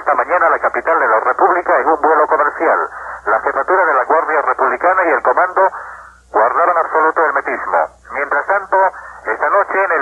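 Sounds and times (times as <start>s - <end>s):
newsreader reading: 0.0s - 10.0s.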